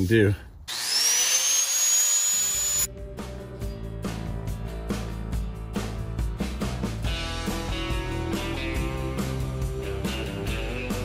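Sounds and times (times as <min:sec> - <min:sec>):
angle grinder whine: 0:00.7 - 0:02.9.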